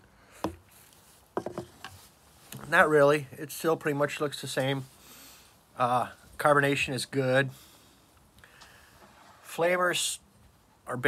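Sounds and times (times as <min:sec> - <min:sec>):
empty can knocking on hard surface: 0:01.4 - 0:01.7.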